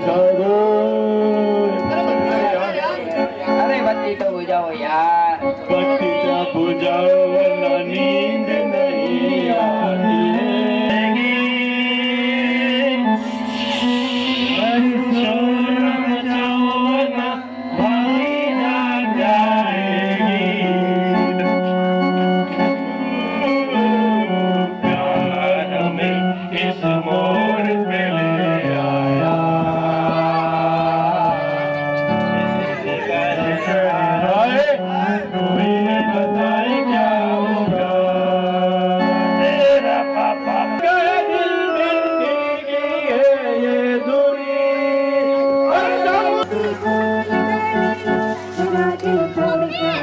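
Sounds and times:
electronic keyboard organ notes: 0.0 - 50.0
man singing into a microphone: 0.0 - 50.0.

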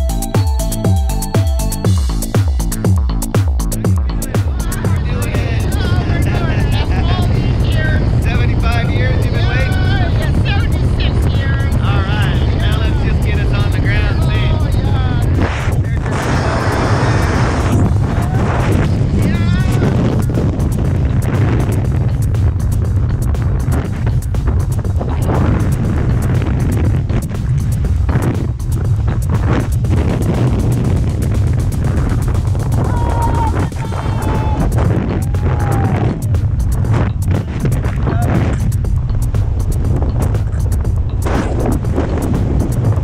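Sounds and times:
wind buffeting microphone: 3.9 - 43.0.

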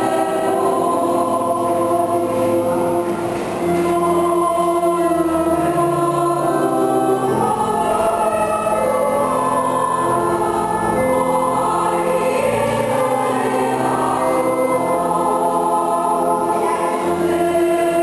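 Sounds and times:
church choir singing: 0.0 - 18.0.

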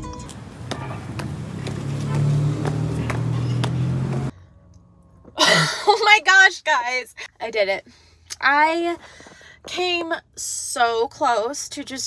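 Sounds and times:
vehicle engine running: 0.1 - 5.3.

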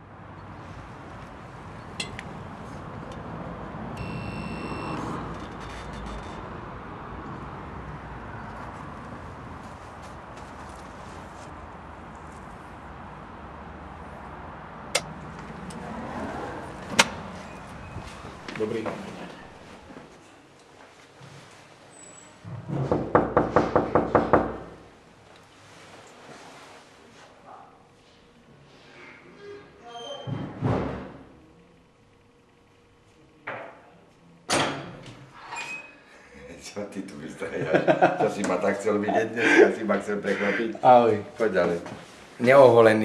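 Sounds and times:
low traffic rumble: 0.0 - 20.4
intercom electronic buzz: 4.0 - 5.3
knuckles knocking on wooden door: 22.8 - 24.7.

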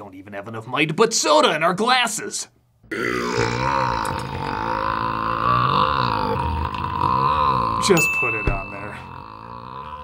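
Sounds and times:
man belching: 2.9 - 10.0.

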